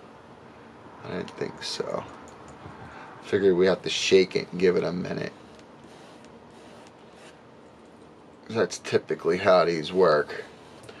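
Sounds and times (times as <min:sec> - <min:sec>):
quiet steady hiss: 0:00.0 - 0:11.0.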